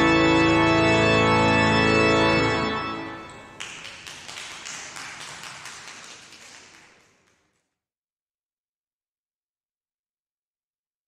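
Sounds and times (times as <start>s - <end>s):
congregation applauding: 2.2s - 7.7s.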